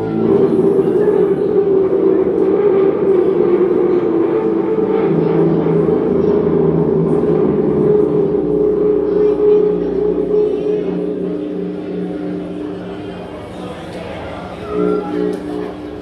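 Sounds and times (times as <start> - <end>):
electric guitar sustained notes: 0.0 - 16.0.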